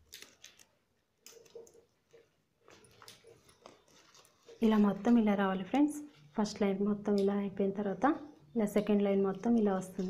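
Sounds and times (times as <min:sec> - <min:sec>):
plastic strips clicking and rubbing: 0:00.0 - 0:05.2.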